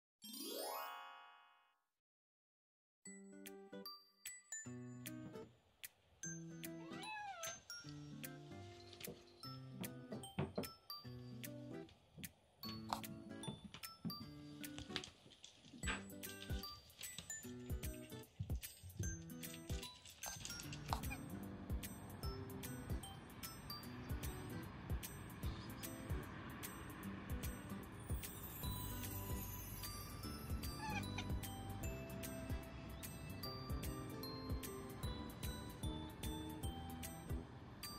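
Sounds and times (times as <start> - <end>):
light background music: 3.1 - 37.9
cat meowing: 6.7 - 7.7, 30.5 - 31.5
background music with beat: 31.3 - 37.5.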